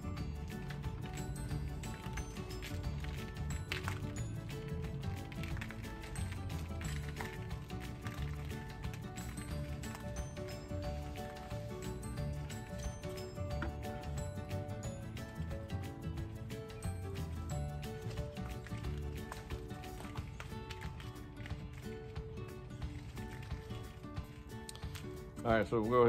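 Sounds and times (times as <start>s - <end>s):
background music with held notes: 0.0s - 26.0s.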